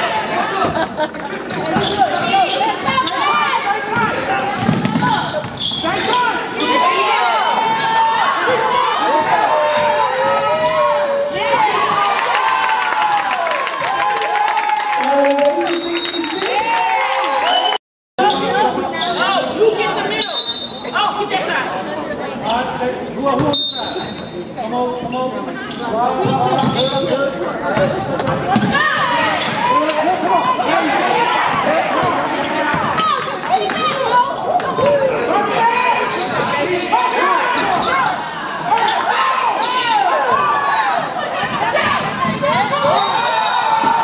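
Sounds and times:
players and spectators calling out: 0.0s - 44.0s
shoe squeaks: 0.9s - 3.4s, 4.4s - 6.8s, 22.8s - 31.2s, 33.8s - 40.8s, 42.2s - 44.0s.

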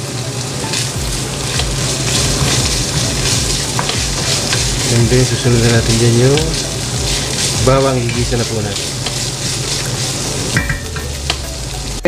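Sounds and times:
meat sizzling in a pan: 0.0s - 12.0s
wooden spatula scraping a pan: 0.7s - 10.7s.

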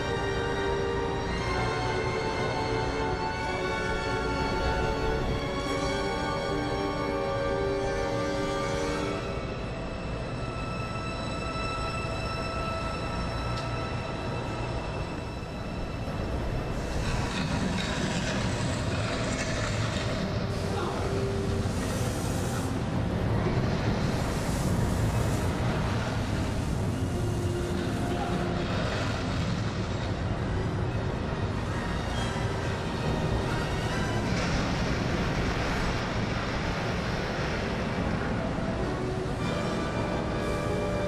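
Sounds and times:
faint music: 0.0s - 41.0s.

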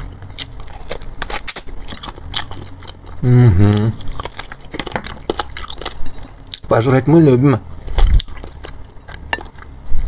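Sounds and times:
person chewing: 0.0s - 6.7s, 7.8s - 10.0s.

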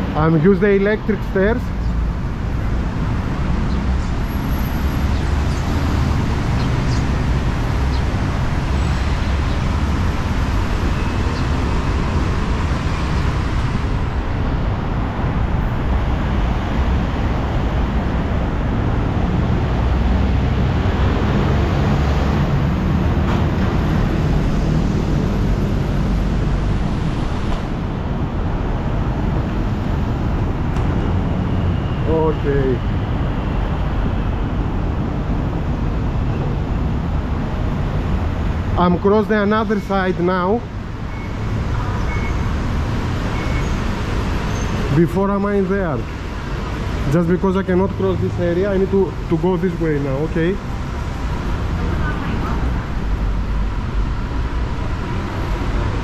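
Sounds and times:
road traffic rumble: 0.0s - 56.0s.

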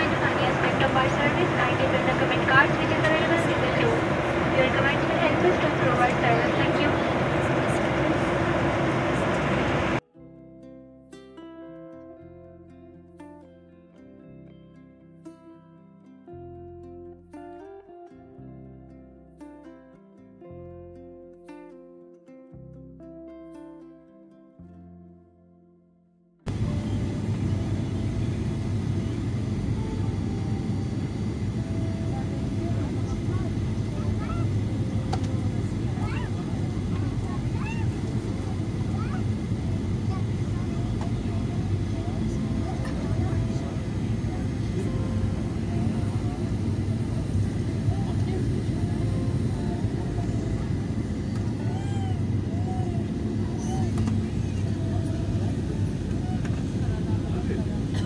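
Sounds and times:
engine and rushing air rumble: 0.0s - 10.0s, 26.5s - 58.0s
faint voices: 0.0s - 10.0s, 26.5s - 58.0s.

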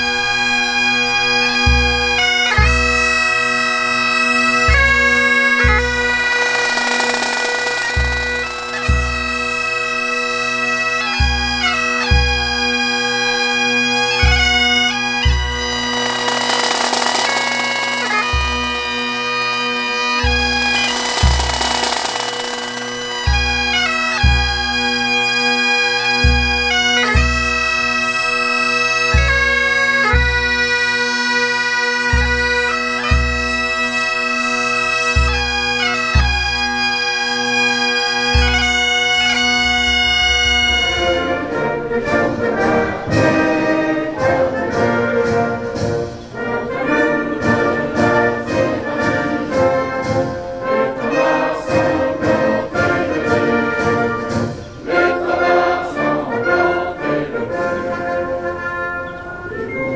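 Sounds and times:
bagpipes playing a tune: 0.0s - 42.0s
orchestral music: 4.8s - 10.3s, 14.2s - 19.2s, 20.4s - 24.8s.

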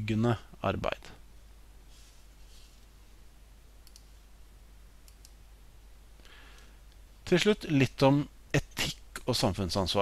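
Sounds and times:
low steady hum: 0.0s - 10.0s
computer clicks: 3.8s - 4.1s, 5.0s - 5.4s.

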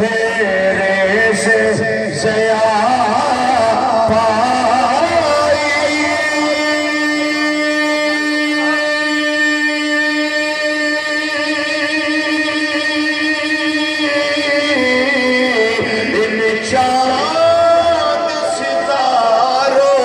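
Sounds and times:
man singing long note into microphone: 0.0s - 20.0s.

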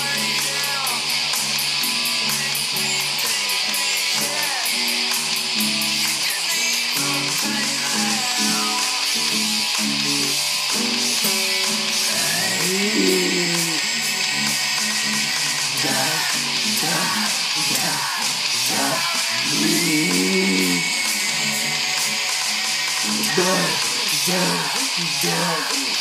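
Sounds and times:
person singing: 0.0s - 1.4s, 2.0s - 5.4s, 6.0s - 9.8s, 11.1s - 26.0s
acoustic guitar strummed: 0.0s - 26.0s.

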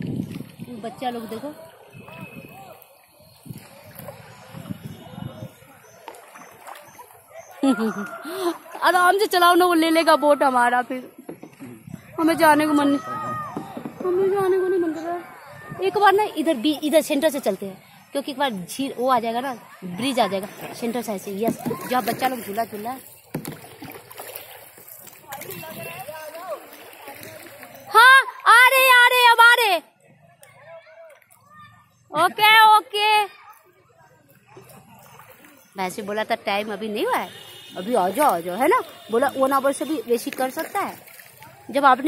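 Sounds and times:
paddle strokes in water: 0.0s - 9.0s, 19.9s - 28.4s, 34.3s - 36.3s, 37.0s - 42.0s
light water splashing: 0.0s - 42.0s.

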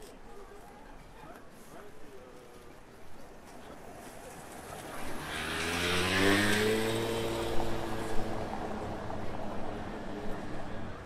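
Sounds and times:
vehicle accelerating past: 5.0s - 9.3s.

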